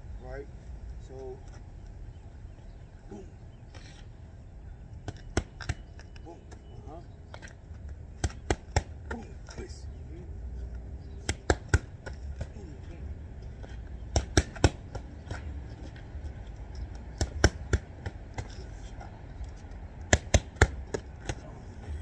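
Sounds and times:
boxing gloves hitting mitts: 5.0s - 5.9s, 8.2s - 9.6s, 11.2s - 13.0s, 13.6s - 15.8s, 17.1s - 18.7s, 20.0s - 21.6s
low rumble: 21.6s - 22.0s.

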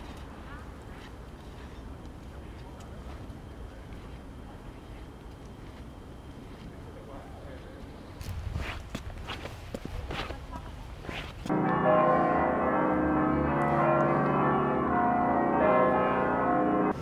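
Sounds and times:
footsteps on cobblestones: 0.0s - 17.0s
church bells ringing: 11.5s - 17.0s.

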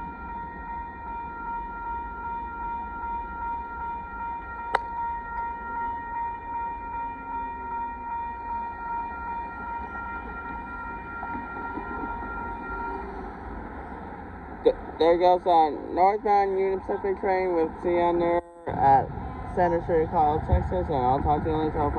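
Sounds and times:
crossing warning bell ringing: 0.0s - 21.9s
low rumble: 9.8s - 21.9s.

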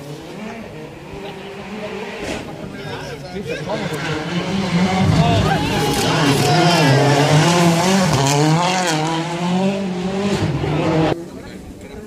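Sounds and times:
rally car engine passing: 0.0s - 11.4s.

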